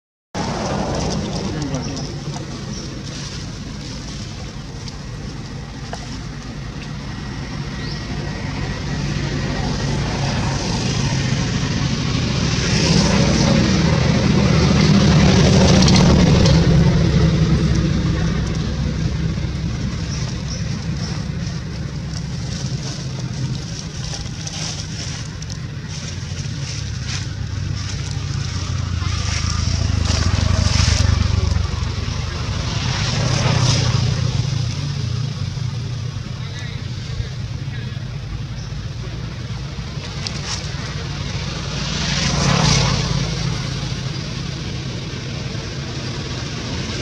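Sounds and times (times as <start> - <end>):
road vehicle passing by: 0.4 - 47.0.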